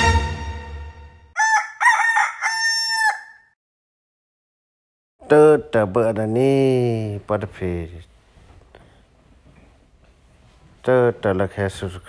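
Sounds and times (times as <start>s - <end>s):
music: 0.0s - 1.4s
rooster crowing: 1.4s - 3.6s.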